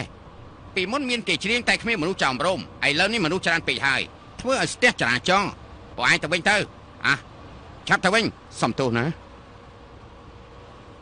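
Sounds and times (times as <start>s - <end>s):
person speaking: 0.8s - 9.3s.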